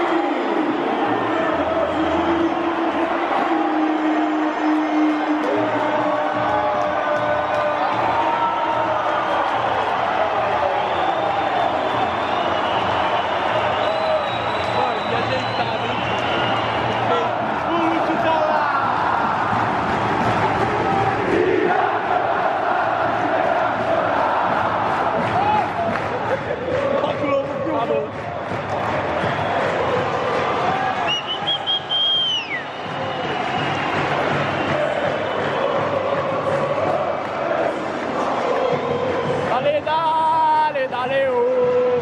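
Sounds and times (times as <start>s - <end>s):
stadium crowd singing and chanting: 0.0s - 15.6s, 16.4s - 42.0s
high sliding whistle: 31.1s - 32.8s.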